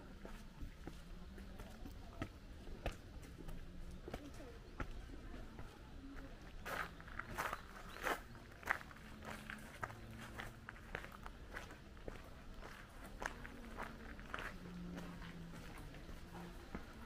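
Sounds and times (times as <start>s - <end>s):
footsteps on gravel: 6.2s - 17.0s.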